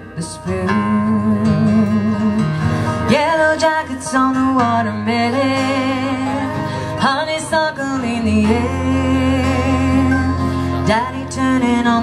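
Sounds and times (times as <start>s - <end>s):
strummed acoustic guitars: 0.0s - 12.0s
woman singing: 0.0s - 12.0s.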